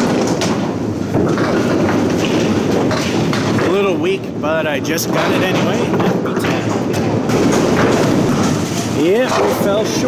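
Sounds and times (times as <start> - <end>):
balls rolling on wooden lanes: 0.0 - 10.0
bowling alley rumble: 0.0 - 10.0.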